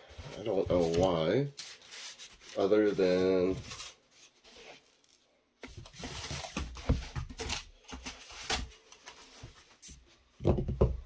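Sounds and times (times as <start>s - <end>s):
pieces rustling and scraping on mat: 0.0s - 10.3s.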